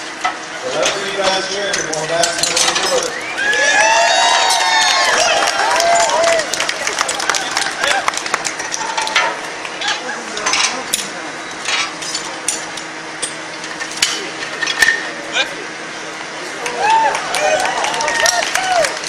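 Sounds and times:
crowd voices: 0:00.5 - 0:19.0
metal tools clanking on steel: 0:00.7 - 0:03.2, 0:09.2 - 0:15.1.

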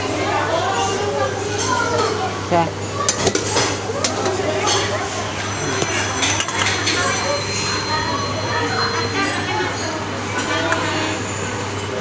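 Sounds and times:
metal tongs clinking on bowls: 0:03.1 - 0:11.1.

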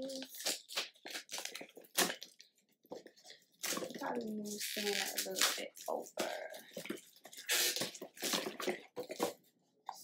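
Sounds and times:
wrapping rustling: 0:00.0 - 0:09.5.

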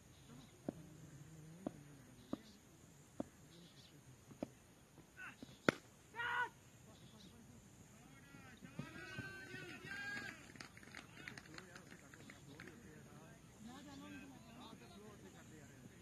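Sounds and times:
faint voices of players: 0:00.2 - 0:16.0
cricket bat hitting ball: 0:05.4 - 0:05.9
short high shout: 0:06.1 - 0:06.6.

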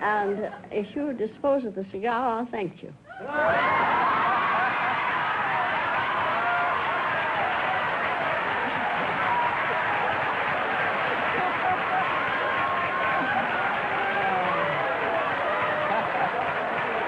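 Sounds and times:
studio audience laughing: 0:10.9 - 0:14.9, 0:15.5 - 0:17.0.

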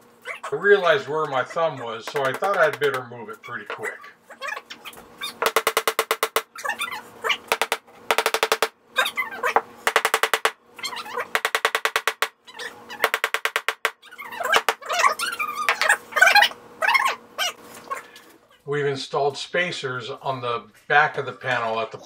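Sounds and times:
hammer pounding nails into wood: 0:02.1 - 0:03.0, 0:05.4 - 0:06.5, 0:07.5 - 0:08.7, 0:09.9 - 0:10.6, 0:11.4 - 0:12.3, 0:13.0 - 0:14.0, 0:14.6 - 0:14.9.

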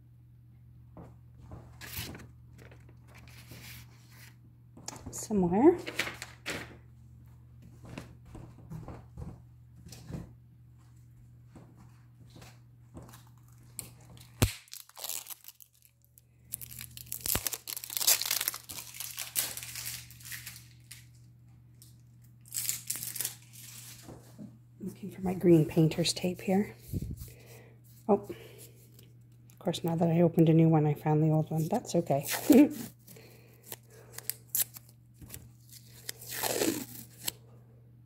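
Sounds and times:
packaging crinkling and tearing: 0:13.1 - 0:24.0, 0:31.6 - 0:37.4.

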